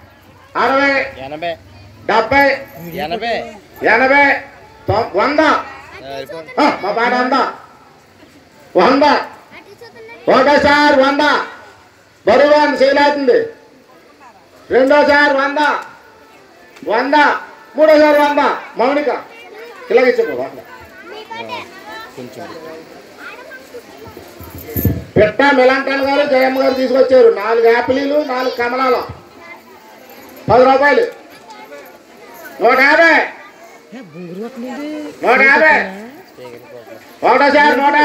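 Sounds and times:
quieter voices: 0.0 - 38.0
man calling over loudspeaker: 0.5 - 7.7, 8.7 - 9.4, 10.3 - 13.7, 14.7 - 16.0, 16.8 - 20.7, 24.8 - 29.2, 30.4 - 31.2, 32.6 - 38.0.

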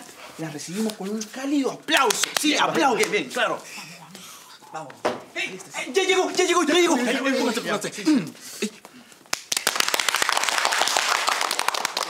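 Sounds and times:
dense steady applause: 1.9 - 3.4, 9.2 - 12.0
people clapping: 1.9 - 3.4, 9.2 - 12.0.

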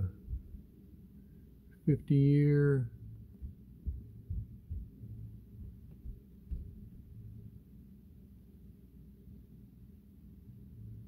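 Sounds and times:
dull low thuds: 0.0 - 0.6, 3.0 - 7.3
low hum: 0.0 - 11.0.

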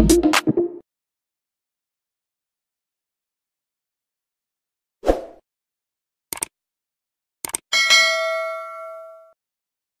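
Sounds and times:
bright bell chime: 7.8 - 9.4.

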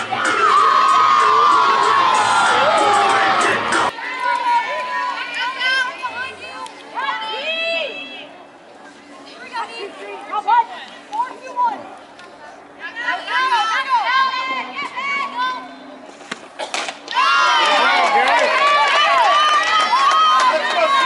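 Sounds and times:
players shouting and cheering: 0.0 - 8.4, 12.7 - 15.8, 17.0 - 21.0.

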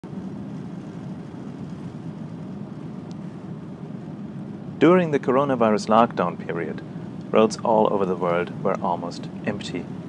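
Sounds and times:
van engine and tyre noise: 0.0 - 10.0.

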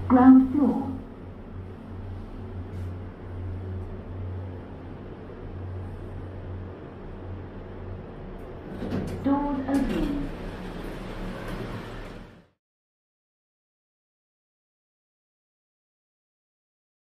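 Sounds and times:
lift car humming: 0.0 - 12.6
sliding doors rumbling open: 8.2 - 12.6.

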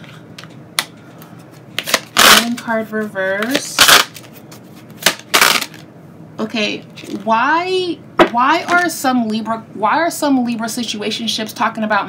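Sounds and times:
cards being shuffled: 1.4 - 5.8.

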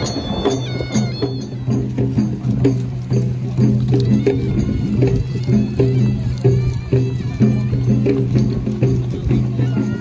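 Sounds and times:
steady drumbeat: 0.0 - 10.0.

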